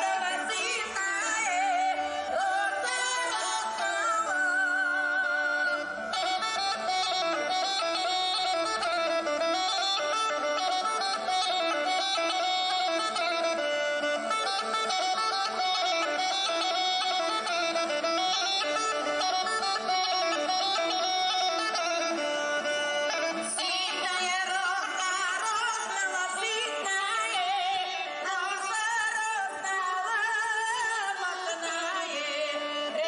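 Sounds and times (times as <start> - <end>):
bagpipe playing a folk dance tune: 0.0 - 33.0.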